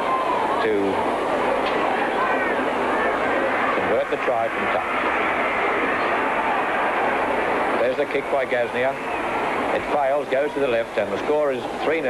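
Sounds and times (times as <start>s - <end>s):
faint voices: 0.0s - 12.0s
old film soundtrack noise: 0.0s - 12.0s
stadium crowd roaring: 0.0s - 12.0s.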